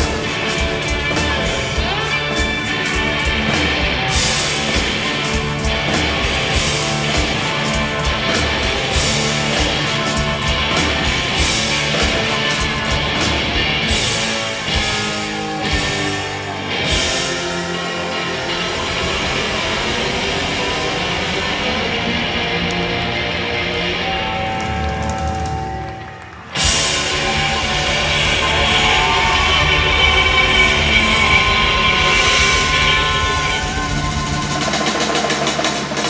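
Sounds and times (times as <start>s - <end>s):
bass guitar: 0.0s - 36.0s
drums: 0.0s - 36.0s
electric guitars: 0.0s - 36.0s.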